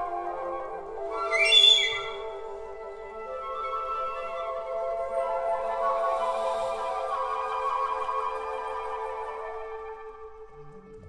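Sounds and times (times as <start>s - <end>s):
flute ensemble sustained tones: 0.0s - 11.0s
shrill breathy high flute note: 1.1s - 10.1s.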